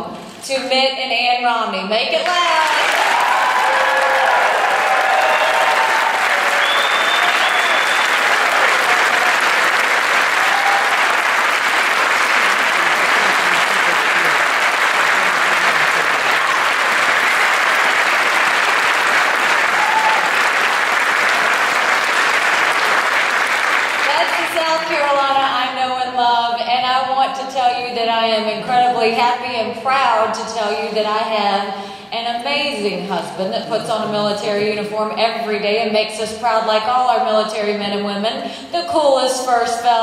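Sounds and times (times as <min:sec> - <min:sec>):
audience applauding and cheering: 0:02.6 - 0:24.8.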